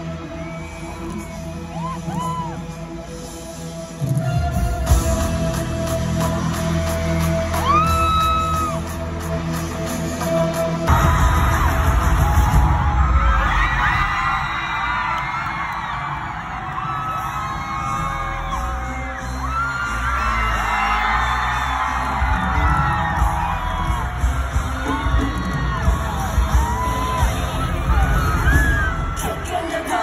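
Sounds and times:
bass-heavy pop music: 0.0s - 30.0s
stadium crowd screaming and cheering: 0.0s - 30.0s.

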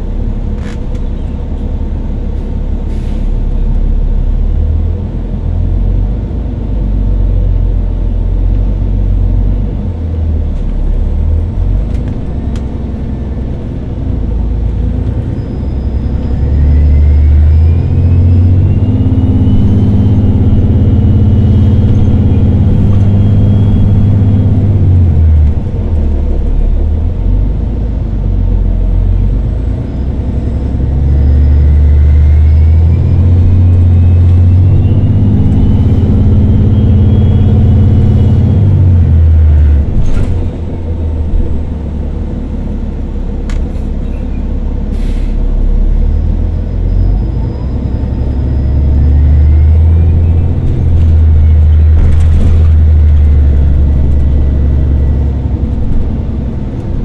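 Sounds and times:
bus engine rumble: 0.0s - 57.0s.

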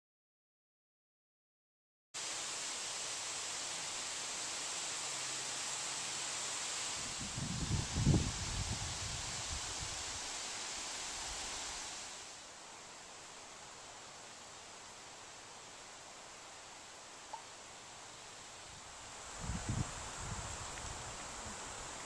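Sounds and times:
loud steady hiss: 2.2s - 22.0s.

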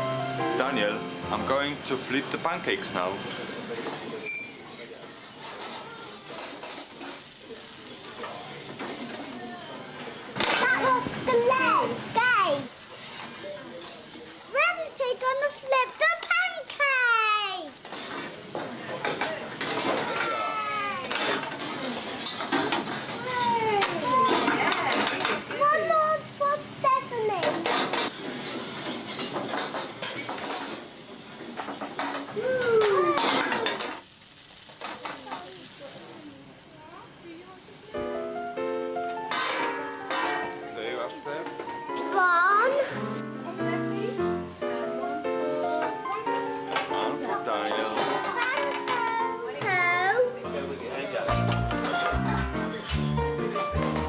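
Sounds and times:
pancakes sizzling: 0.0s - 54.0s
frying pans knocking on stove: 10.0s - 14.0s, 17.7s - 35.4s, 38.9s - 42.1s, 45.7s - 54.0s
children exclaiming excitedly: 19.9s - 21.1s, 23.2s - 24.6s, 32.3s - 33.8s.

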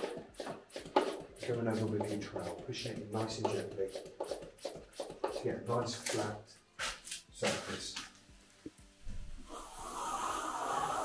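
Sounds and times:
pressure sprayer hissing: 0.0s - 5.4s, 9.3s - 11.0s.

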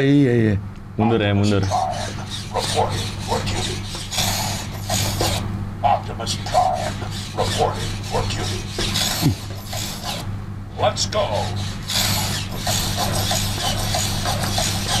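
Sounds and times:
robot toy servos whirring: 1.6s - 5.5s, 6.5s - 10.3s, 11.3s - 15.0s.

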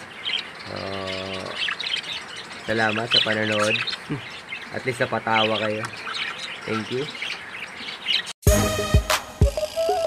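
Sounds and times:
budgerigars chirping: 0.0s - 8.3s
music with deep thump: 8.5s - 10.0s.

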